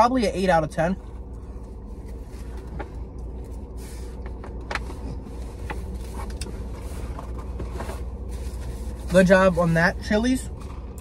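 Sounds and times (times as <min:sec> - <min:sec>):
low car cabin hum: 0:00.0 - 0:11.0.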